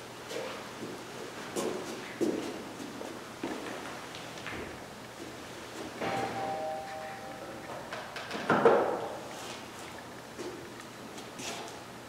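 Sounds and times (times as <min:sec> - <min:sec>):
faint ringing tone: 0:06.0 - 0:08.2.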